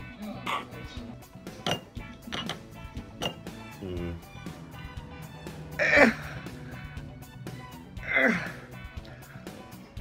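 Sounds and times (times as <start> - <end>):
background music with steady beat: 0.0 - 10.0
man grunting: 5.8 - 6.4, 8.0 - 8.7.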